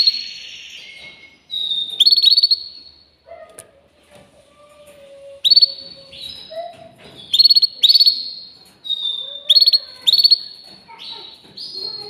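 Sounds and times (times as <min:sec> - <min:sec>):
canary chirping and trilling: 0:00.0 - 0:03.7, 0:04.6 - 0:12.0.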